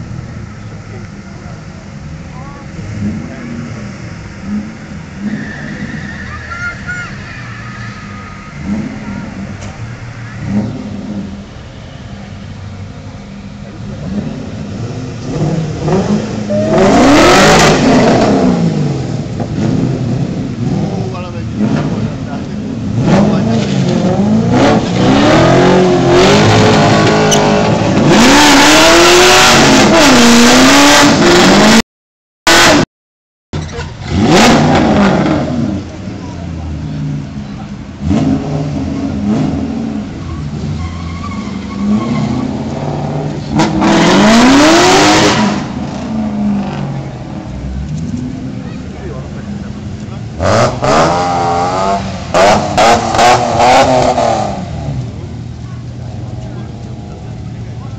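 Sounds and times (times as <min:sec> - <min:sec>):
car engines revving hard: 0:00.0 - 0:31.8, 0:32.5 - 0:32.8, 0:33.6 - 0:57.9.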